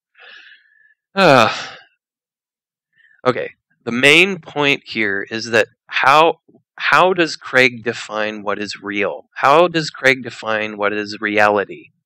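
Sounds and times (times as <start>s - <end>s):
man breathing in: 0.1s - 1.1s
man sighing: 1.2s - 1.8s.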